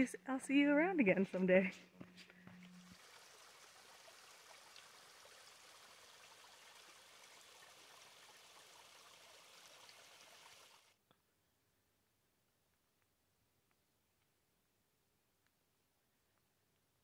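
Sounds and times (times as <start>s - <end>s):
stream trickling and splashing: 2.7s - 10.9s.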